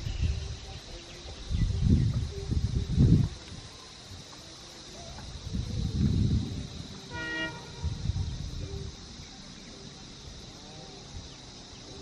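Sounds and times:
diesel locomotive horn toot: 0:07.1 - 0:08.0.

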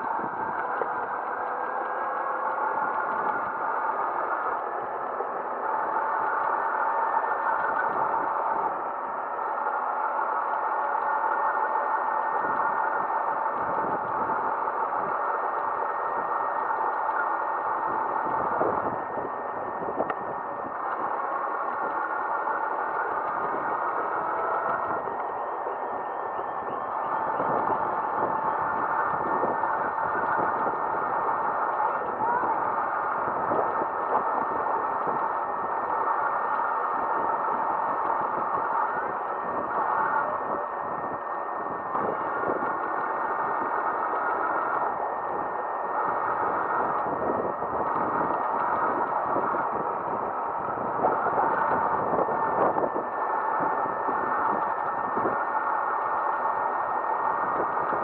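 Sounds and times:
road and wind noise: 0:00.0 - 0:58.0.

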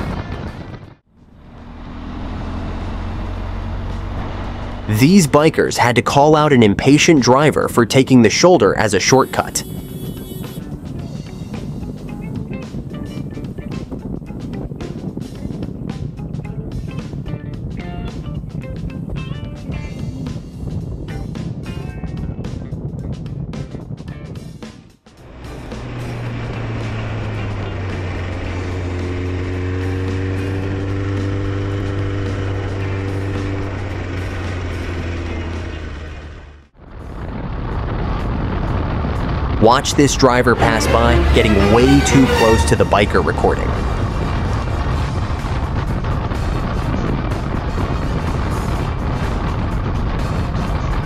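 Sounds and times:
road noise: 0:00.0 - 0:20.9, 0:25.0 - 0:51.0
motorcycle engine: 0:00.5 - 0:05.0, 0:09.1 - 0:14.4, 0:25.1 - 0:37.1, 0:39.6 - 0:50.4
sustained note rising and falling: 0:01.2 - 0:04.9, 0:39.6 - 0:44.4
background music: 0:39.6 - 0:44.4.

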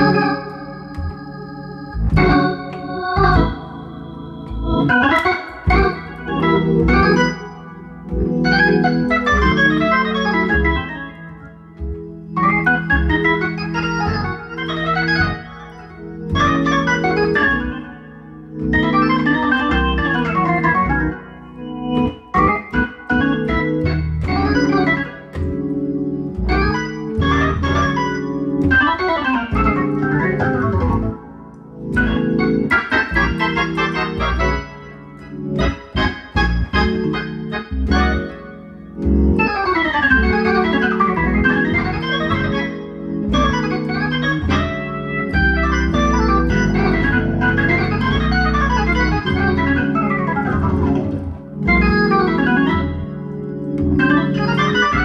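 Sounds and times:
organ playing soul chords: 0:00.0 - 0:55.0.

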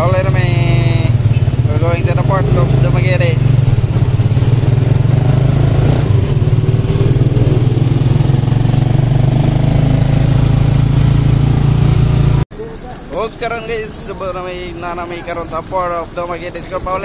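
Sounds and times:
motorcycle engine droning: 0:00.0 - 0:13.4.

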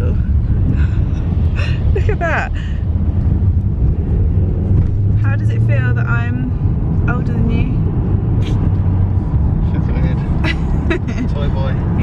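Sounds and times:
car interior driving rumble: 0:00.0 - 0:12.0.

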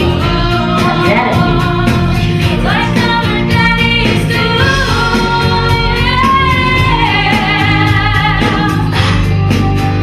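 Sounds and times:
women singing pop song: 0:00.0 - 0:09.8
instrumental accompaniment: 0:00.0 - 0:10.0.

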